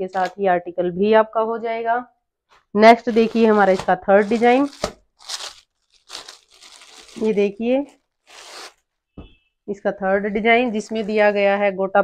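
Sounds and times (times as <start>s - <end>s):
plastic packaging rustling: 3.0s - 8.8s.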